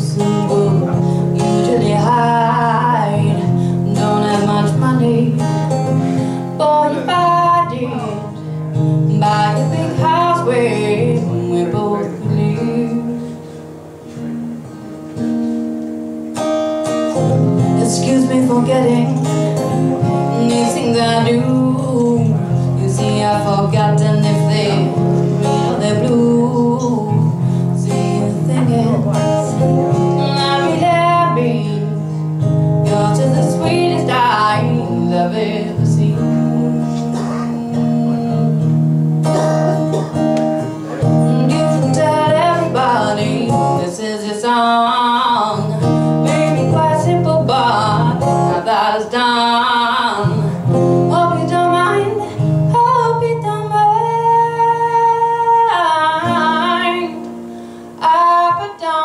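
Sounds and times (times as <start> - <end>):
woman singing: 0.0 - 13.4, 17.6 - 39.4, 41.0 - 57.4, 58.0 - 59.0
strummed acoustic guitar: 0.0 - 59.0.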